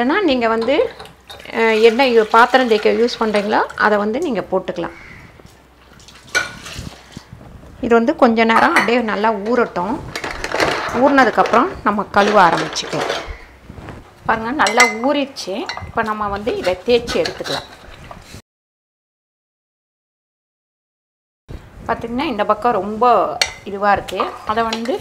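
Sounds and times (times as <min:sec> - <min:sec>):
metal grates clinking in water: 0:14.6 - 0:18.0.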